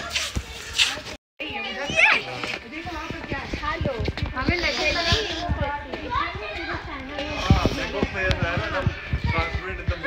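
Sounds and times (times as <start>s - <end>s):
voices talking and calling: 0.0s - 10.0s.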